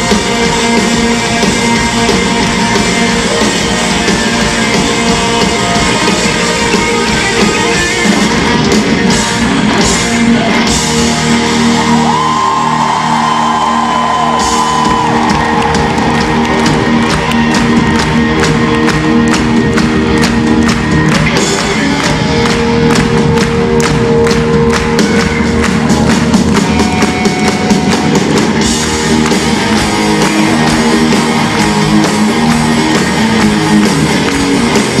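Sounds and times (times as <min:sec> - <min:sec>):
audience cheering: 0:00.0 - 0:35.0
audience clapping a beat: 0:00.0 - 0:35.0
electric guitar chords: 0:00.0 - 0:35.0
live rock band: 0:00.0 - 0:35.0.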